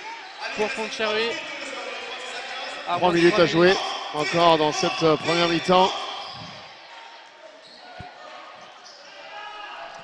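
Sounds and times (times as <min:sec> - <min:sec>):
sports hall murmur: 0:00.0 - 0:10.0.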